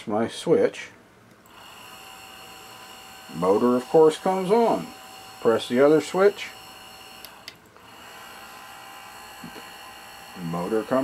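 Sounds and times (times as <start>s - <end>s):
small motor whine: 1.5s - 11.0s.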